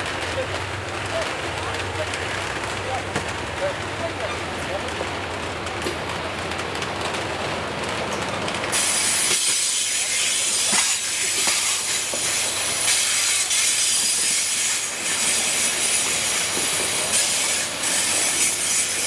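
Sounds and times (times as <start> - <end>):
train cars rumbling past: 0.0 - 19.0.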